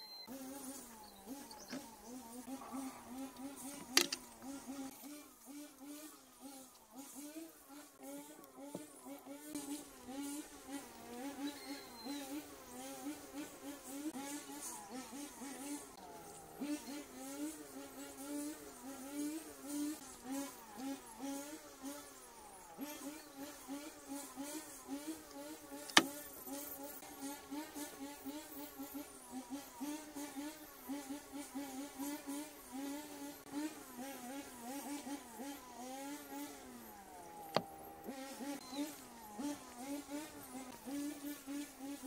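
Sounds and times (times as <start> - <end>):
flying insect buzzing: 0.2 - 42.0.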